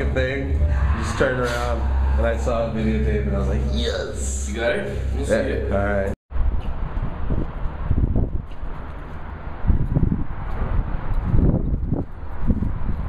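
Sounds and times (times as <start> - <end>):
low rumble: 0.0 - 8.5.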